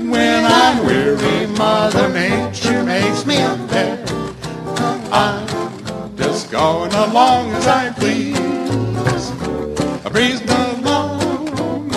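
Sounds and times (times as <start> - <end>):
plucked string bass: 0.0 - 11.9
strummed acoustic guitar: 0.0 - 11.9.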